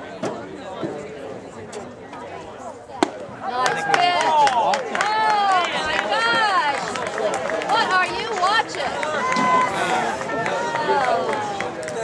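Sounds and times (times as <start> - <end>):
spectators calling and chattering: 0.0 - 12.0.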